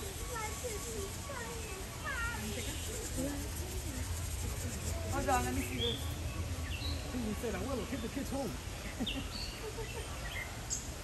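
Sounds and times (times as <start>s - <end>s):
high children's voices: 0.0s - 7.2s
people talking: 0.0s - 10.2s.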